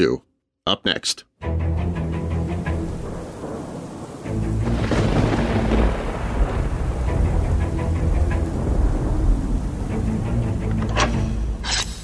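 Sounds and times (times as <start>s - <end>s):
dark background music: 1.4s - 12.0s
rain: 1.8s - 11.8s
thunderclap rumbling: 2.4s - 10.7s.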